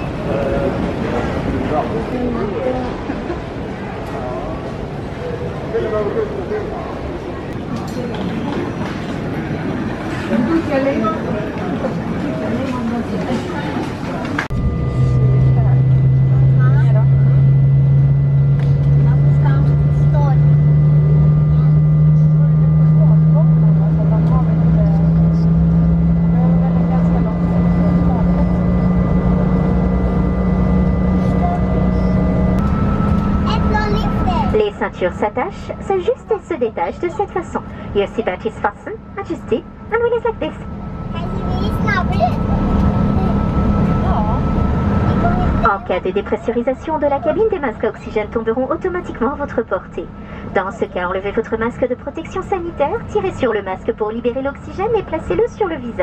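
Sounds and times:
faint voices in cabin: 0.0s - 32.4s, 33.5s - 56.0s
airliner engine hum: 0.0s - 56.0s
thin steady whines: 0.0s - 56.0s.

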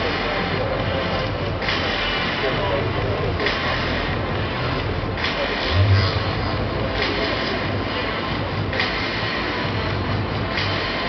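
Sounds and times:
mechanical rumble over loudspeakers: 4.2s - 8.7s.

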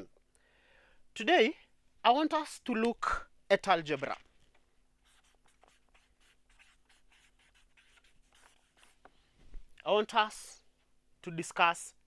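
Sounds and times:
marker pen writing on paper: 5.0s - 9.2s.

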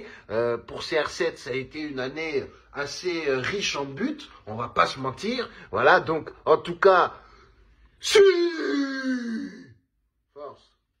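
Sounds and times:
man's drawn-out vocal cry: 8.0s - 9.8s.

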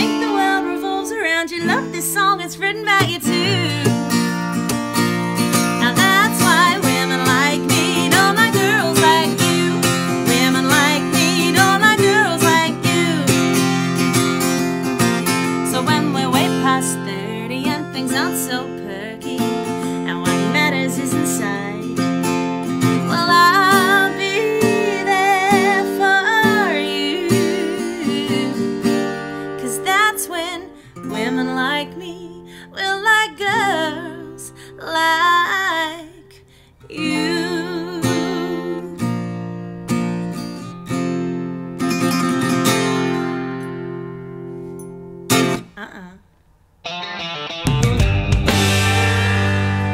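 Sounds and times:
strummed acoustic guitar: 0.0s - 31.9s, 37.0s - 45.7s, 46.9s - 49.9s
woman singing country song: 0.0s - 43.9s, 45.5s - 46.2s.

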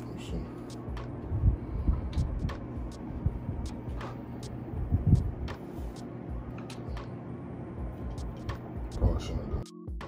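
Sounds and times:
low thumps: 0.8s - 5.6s.

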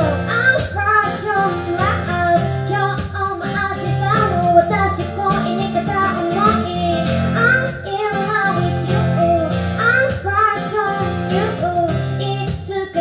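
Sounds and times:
strummed acoustic guitar: 0.0s - 13.0s
woman singing: 0.0s - 13.0s.

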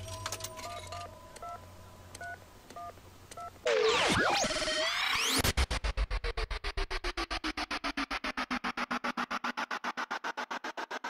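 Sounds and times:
sweeping electronic sound: 3.7s - 11.0s.

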